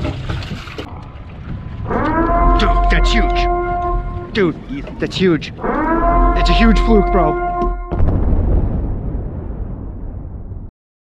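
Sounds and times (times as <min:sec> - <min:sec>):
explosion-like boom: 0:07.9 - 0:10.7.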